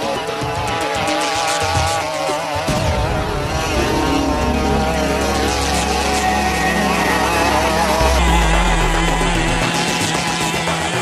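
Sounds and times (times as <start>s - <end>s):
small two-stroke engine buzzing: 0.0s - 11.0s.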